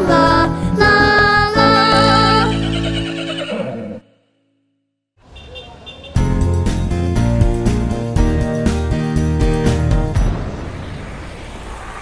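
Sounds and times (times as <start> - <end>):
children's song: 0.0 - 3.0.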